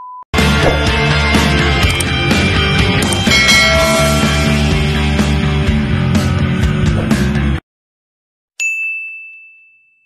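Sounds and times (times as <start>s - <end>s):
bright ding: 3.3s - 5.1s.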